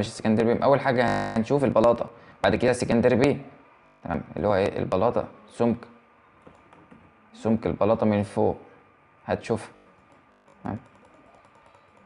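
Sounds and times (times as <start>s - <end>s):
computer mouse clicking: 6.4s - 7.0s, 10.0s - 12.0s.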